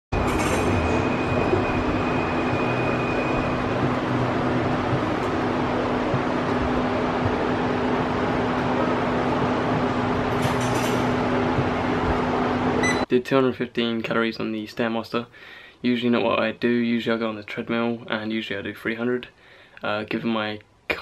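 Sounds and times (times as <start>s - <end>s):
faint high whine: 0.2s - 10.3s
stair climber machine rumbling: 0.2s - 12.9s.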